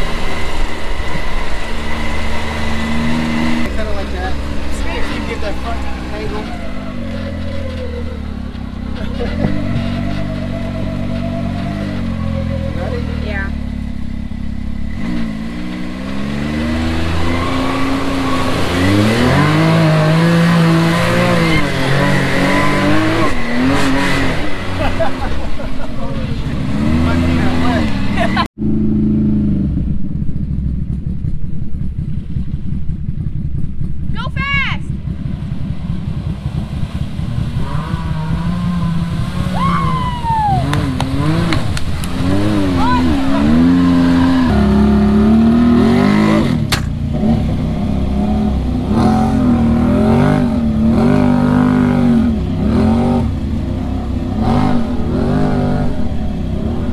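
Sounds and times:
vehicle driving through water: 0:00.0 - 0:30.4, 0:34.9 - 0:56.9
engine revving: 0:00.0 - 0:34.1, 0:34.8 - 0:56.9.

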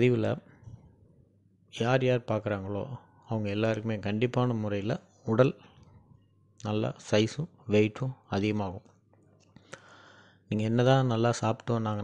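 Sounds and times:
man speaking: 0:00.0 - 0:00.5, 0:01.8 - 0:05.6, 0:06.6 - 0:08.8, 0:10.5 - 0:12.0.

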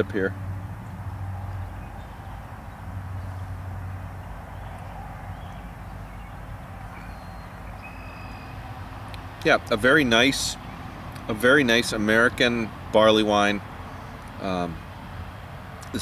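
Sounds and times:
distant road traffic rumble: 0:00.0 - 0:16.0.

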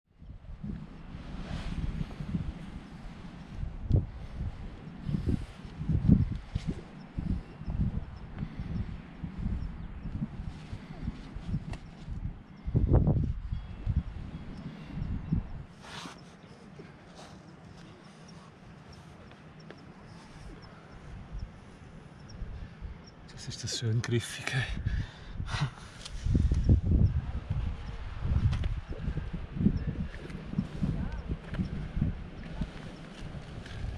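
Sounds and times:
wind buffeting microphone: 0:00.1 - 0:33.9.

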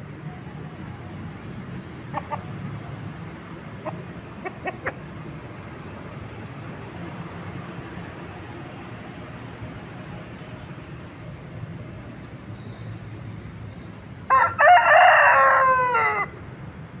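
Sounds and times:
rooster clucking: 0:02.0 - 0:02.7, 0:03.7 - 0:05.2.

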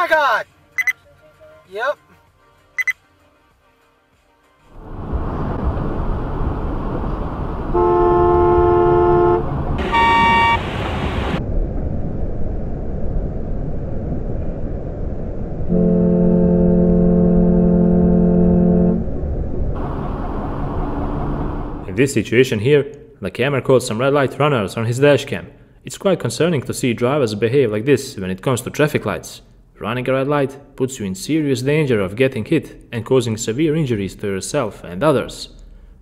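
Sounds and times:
road noise inside car: 0:04.7 - 0:22.0
car horn honking: 0:07.7 - 0:10.8, 0:15.7 - 0:19.0.

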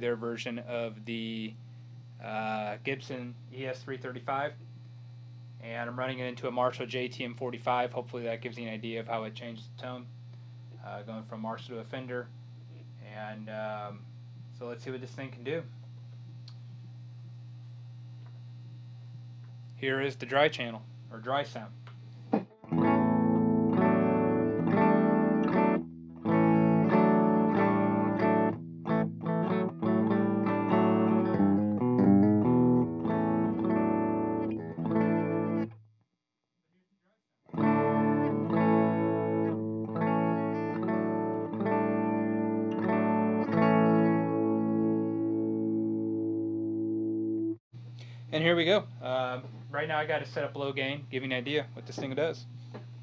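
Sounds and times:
faint amp hum: 0:00.0 - 0:35.8, 0:37.6 - 0:53.0
electric guitar chords and notes: 0:22.0 - 0:35.8, 0:37.5 - 0:48.3.

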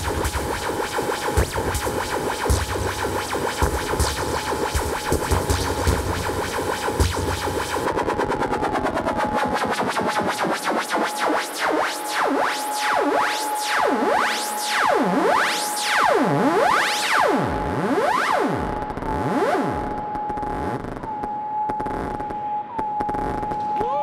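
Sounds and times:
steady high synthesizer tone: 0:00.0 - 0:21.0
synthesizer pitch sweeps: 0:00.0 - 0:21.0.

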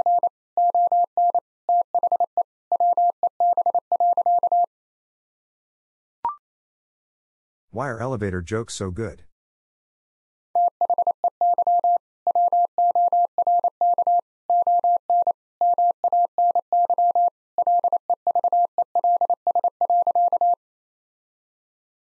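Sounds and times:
morse code tone: 0:10.6 - 0:20.6.

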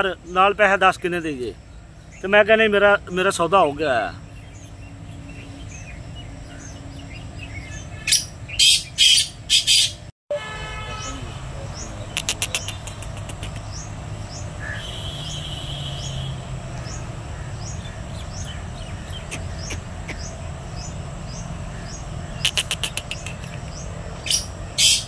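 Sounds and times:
bird calling harsh notes: 0:00.0 - 0:10.1, 0:10.9 - 0:25.0.

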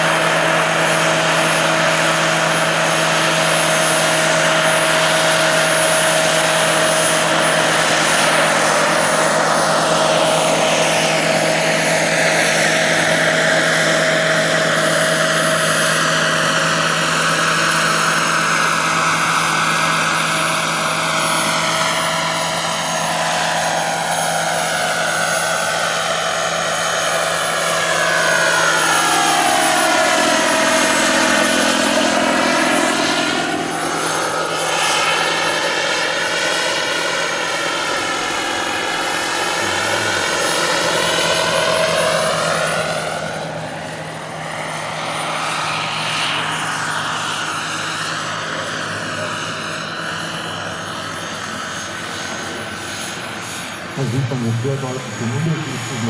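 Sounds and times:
helicopter rotor noise: 0:00.0 - 0:56.0
model helicopter turbine whine: 0:00.0 - 0:56.0.

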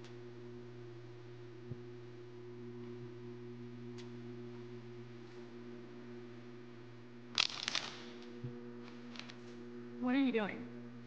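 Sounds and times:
low background hum: 0:00.0 - 0:11.0
sharp rustling clicks: 0:07.3 - 0:08.3.

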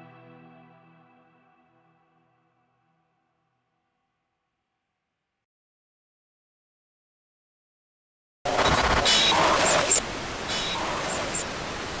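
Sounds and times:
bright glitch burst: 0:08.5 - 0:10.0
static-like hiss: 0:08.5 - 0:12.0.

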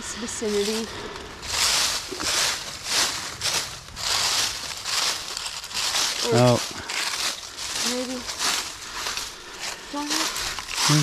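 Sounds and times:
dry leaves rustling and crackling: 0:00.0 - 0:11.0.

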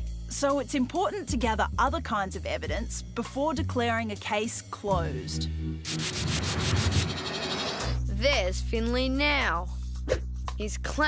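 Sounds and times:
hissing spray sound effect: 0:05.8 - 0:07.8.

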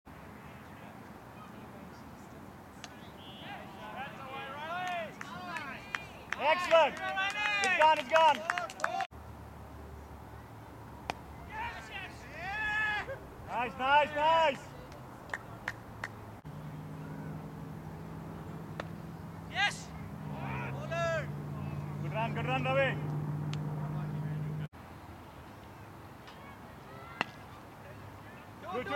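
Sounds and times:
people calling out: 0:11.4 - 0:14.7, 0:19.4 - 0:24.6
cricket bat hitting ball: 0:18.7 - 0:19.0
short shouted calls: 0:19.5 - 0:23.0.

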